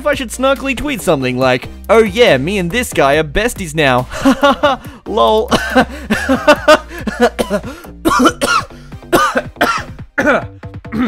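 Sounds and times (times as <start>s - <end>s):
background music: 0.0s - 11.0s
man laughing and coughing: 4.1s - 11.0s.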